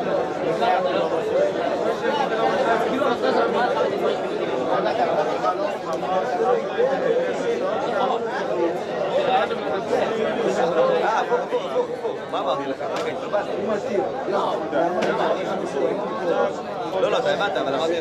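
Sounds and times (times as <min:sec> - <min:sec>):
babble of men studying aloud: 0:00.0 - 0:18.0.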